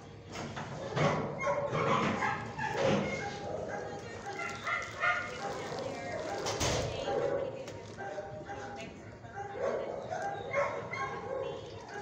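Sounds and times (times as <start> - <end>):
dogs barking: 0.7 - 12.0.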